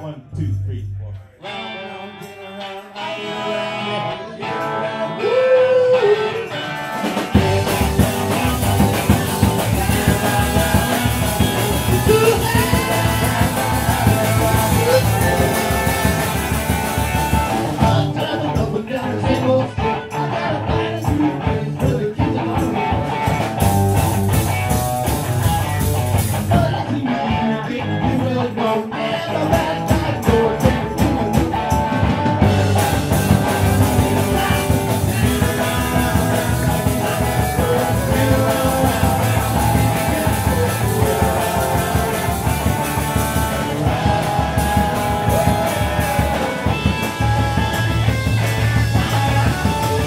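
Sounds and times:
rock band playing: 1.4s - 50.0s.

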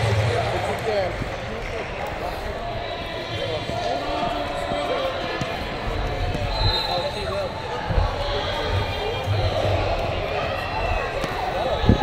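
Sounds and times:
many voices talking and calling: 0.0s - 12.0s.

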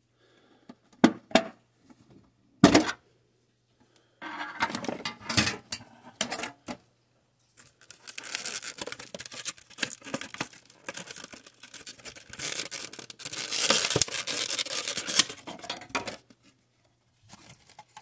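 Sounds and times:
plastic insert crinkling: 7.8s - 16.2s.

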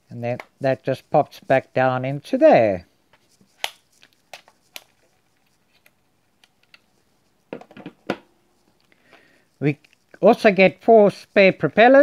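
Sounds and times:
controller knocking as set down: 7.5s - 8.3s.

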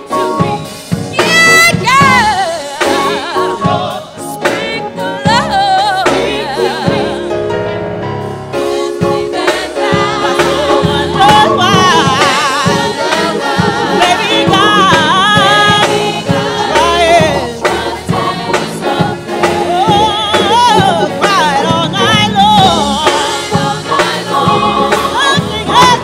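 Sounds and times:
lead voice singing: 0.0s - 7.5s, 8.8s - 26.0s
drum kit: 0.0s - 26.0s
gospel choir singing: 0.0s - 26.0s
keyboard: 0.0s - 26.0s.

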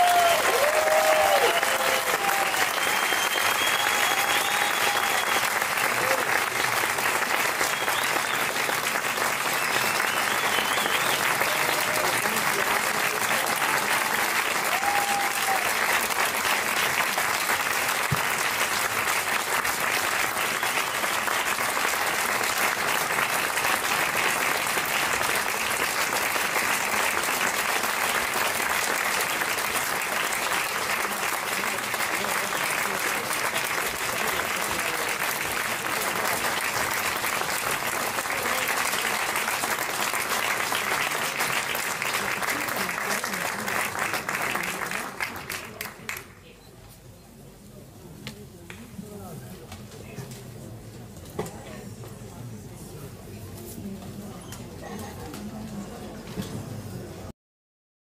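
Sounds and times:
whoops and whistles: 0.0s - 5.4s, 9.9s - 11.2s
audience applauding: 0.0s - 46.4s.

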